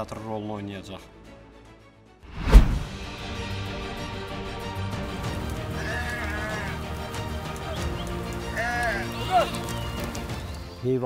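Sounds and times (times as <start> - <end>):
background music: 0.0 - 11.0
sheep bleating: 5.6 - 9.8.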